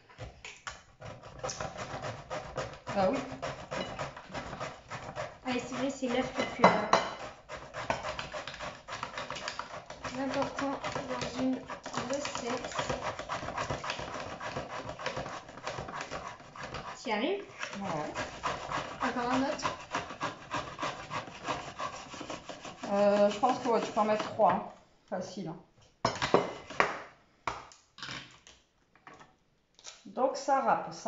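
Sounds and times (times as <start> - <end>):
kitchen utensils clicking and scraping: 1.0 - 24.7.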